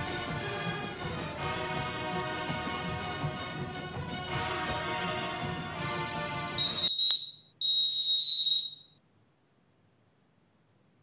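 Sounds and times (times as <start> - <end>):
shrill whistle blasts: 6.6 - 9.0.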